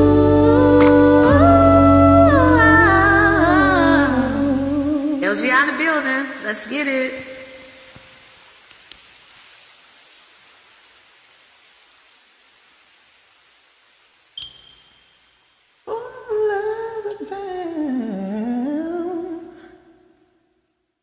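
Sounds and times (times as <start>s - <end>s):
person humming a long note: 0.0s - 5.2s, 15.9s - 20.0s
faint hiss: 0.0s - 21.0s.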